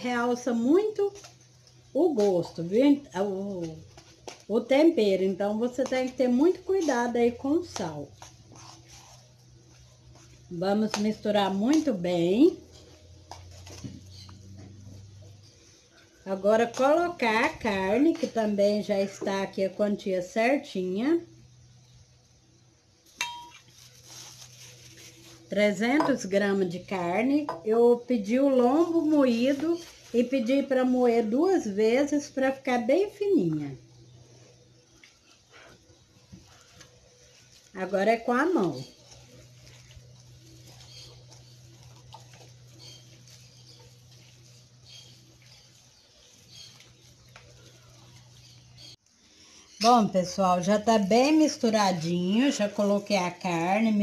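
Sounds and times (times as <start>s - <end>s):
hands mixing food in a bowl: 0.0s - 19.4s, 23.3s - 32.8s, 35.0s - 49.0s
steady low hum: 0.0s - 54.0s
birds calling: 38.6s - 50.1s.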